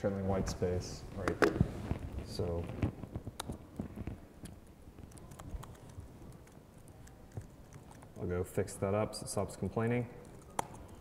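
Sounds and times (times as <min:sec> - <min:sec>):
laptop keyboard keystrokes: 0:04.4 - 0:08.2.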